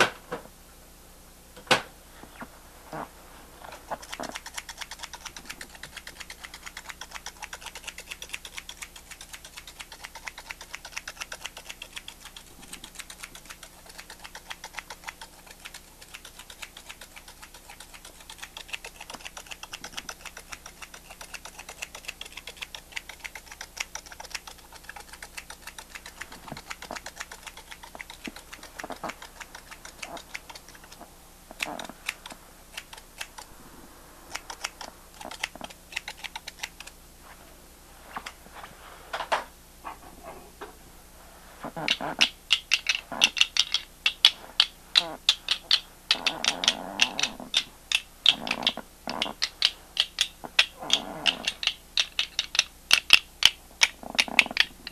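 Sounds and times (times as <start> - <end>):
rapid light clicking: 3.7 - 33.5, 34.3 - 37.0, 41.8 - 54.9.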